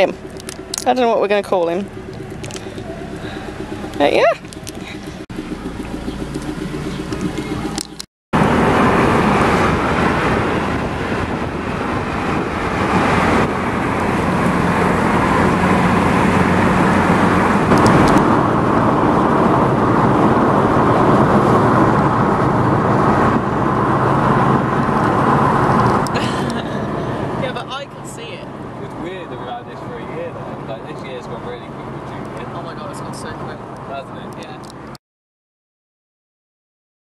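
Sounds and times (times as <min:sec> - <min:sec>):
car interior hum: 0:00.0 - 0:34.9
road and engine noise: 0:00.0 - 0:35.0.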